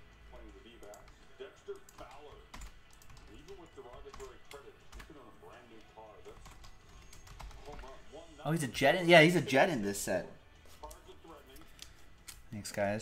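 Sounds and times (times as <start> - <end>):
computer keyboard typing: 0.4 - 5.2, 6.3 - 7.9.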